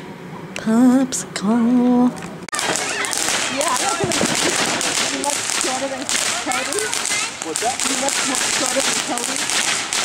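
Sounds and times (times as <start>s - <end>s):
firework sparks crackling: 2.4s - 10.0s.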